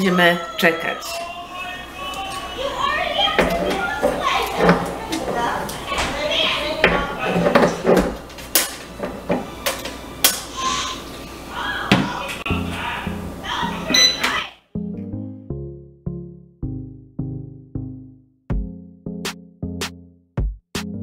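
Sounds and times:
children's voices: 0:00.2 - 0:07.8, 0:10.4 - 0:14.6
electronic music with a beat: 0:18.5 - 0:21.0.

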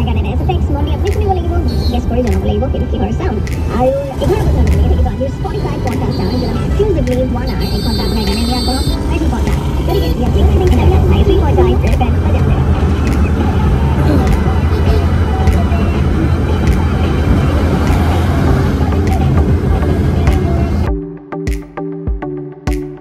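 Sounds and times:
car engine and road rumble: 0:00.0 - 0:20.9.

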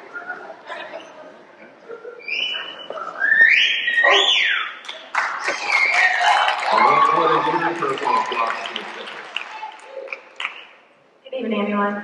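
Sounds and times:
audience whistling: 0:02.3 - 0:10.1
applause: 0:04.8 - 0:10.8.

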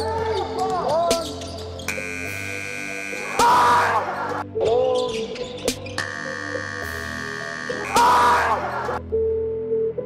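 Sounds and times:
hip-hop music: 0:00.0 - 0:09.1.

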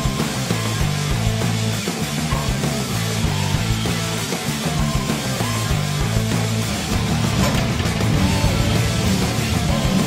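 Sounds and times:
rock music with guitar: 0:00.0 - 0:10.0.

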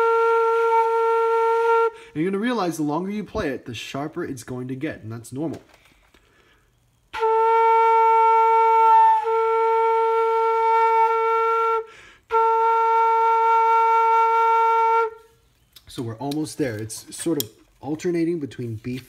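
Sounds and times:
bamboo flute held notes: 0:00.0 - 0:02.1, 0:07.1 - 0:15.4.

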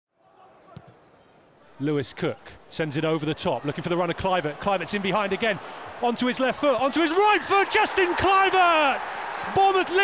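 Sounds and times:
stadium crowd murmur: 0:00.2 - 0:10.0
man commentating: 0:01.8 - 0:10.0.

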